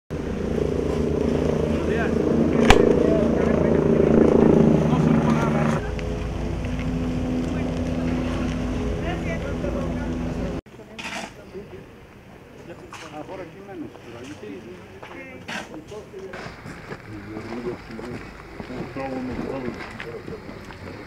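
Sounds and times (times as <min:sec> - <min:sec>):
engine humming: 0:00.1 - 0:10.6
faint voices: 0:01.6 - 0:21.0.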